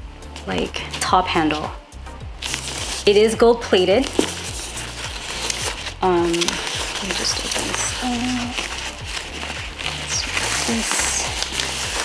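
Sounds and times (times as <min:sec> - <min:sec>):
soft background music: 0:00.0 - 0:12.0
paper rustling and crinkling: 0:02.4 - 0:12.0.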